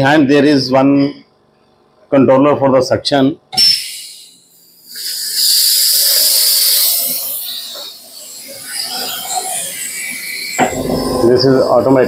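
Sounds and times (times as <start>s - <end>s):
dental suction hissing: 3.6s - 12.0s.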